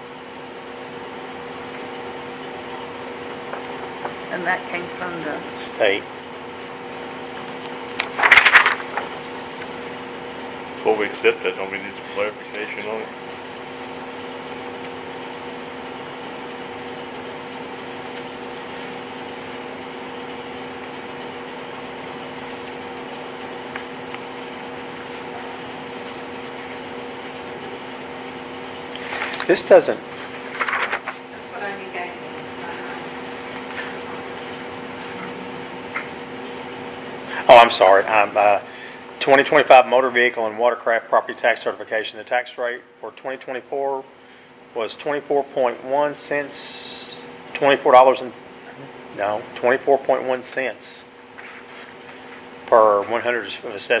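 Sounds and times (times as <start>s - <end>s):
low room hum: 0.0s - 54.0s.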